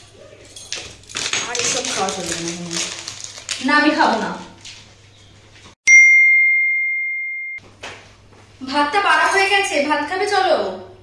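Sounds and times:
bell-like ding: 5.9s - 7.6s.

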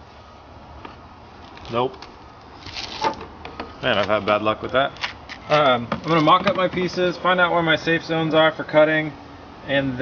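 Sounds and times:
plastic fender flare scraping: 2.6s - 3.3s.

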